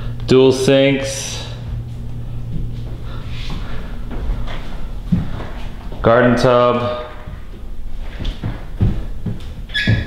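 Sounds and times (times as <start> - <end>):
footsteps on tiled floor: 1.7 - 6.1, 7.1 - 10.0
short high squeak: 9.7 - 10.0.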